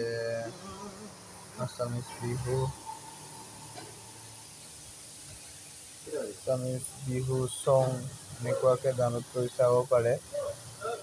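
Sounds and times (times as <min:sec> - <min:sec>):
faint high-pitched hiss: 0:00.0 - 0:11.0.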